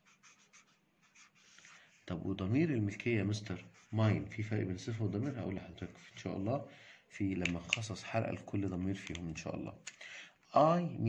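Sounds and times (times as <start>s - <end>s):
marker scratching on paper: 0.0s - 2.3s, 3.0s - 6.5s.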